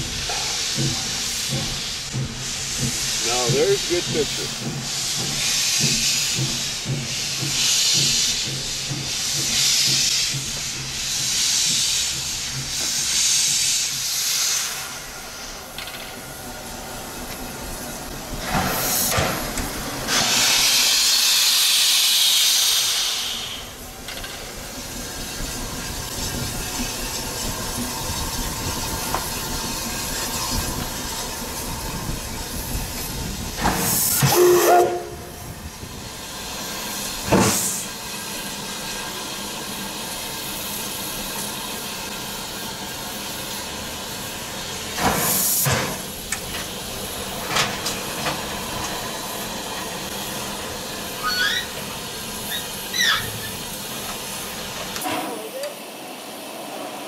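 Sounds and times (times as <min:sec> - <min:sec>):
steam locomotive hissing: 0:00.0 - 0:57.0.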